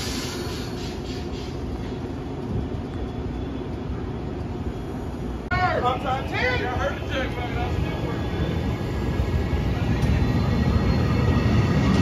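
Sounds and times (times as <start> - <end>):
railcar wheels rumbling on rails: 0.0 - 12.0.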